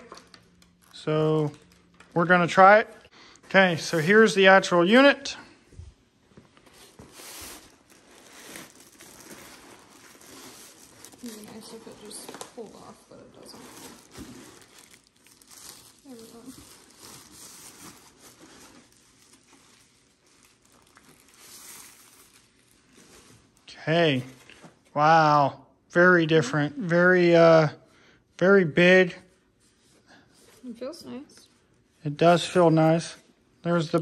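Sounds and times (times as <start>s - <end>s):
plastic wrapping crinkling: 0.0s - 3.1s, 6.5s - 23.7s.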